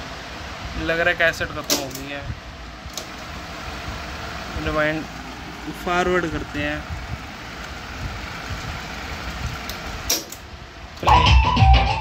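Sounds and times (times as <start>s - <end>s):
cassette deck winding whir: 2.8s - 12.0s.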